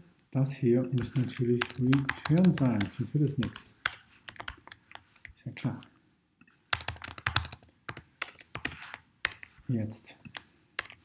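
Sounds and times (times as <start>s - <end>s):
computer keyboard typing: 1.0s - 5.3s, 6.7s - 9.6s, 10.3s - 11.0s.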